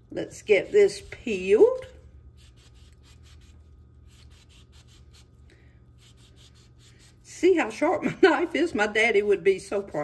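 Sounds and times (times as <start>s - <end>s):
low steady hum: 0.0s - 10.0s
knife cutting orange peel: 0.6s - 5.3s.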